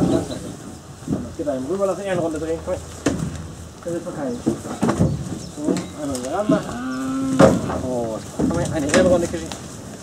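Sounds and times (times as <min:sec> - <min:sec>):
hooves knocking on metal ramp: 0:04.4 - 0:09.3
men calling to cattle: 0:05.5 - 0:09.6.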